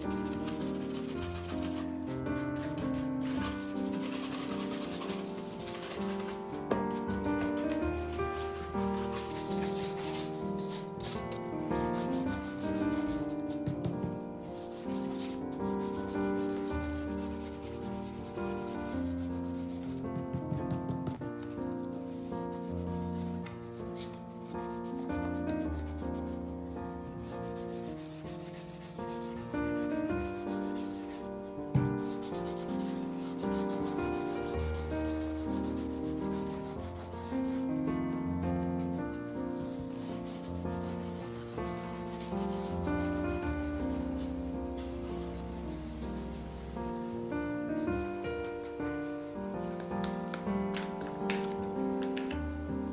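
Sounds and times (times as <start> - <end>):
brush rubbing leather shoe: 0.0 - 20.3, 27.2 - 31.3, 31.9 - 44.4, 45.2 - 46.8
background music: 0.0 - 52.9.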